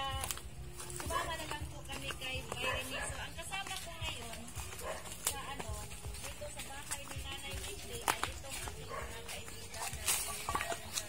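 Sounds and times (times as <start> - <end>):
footsteps on leaf litter: 0.0 - 11.0.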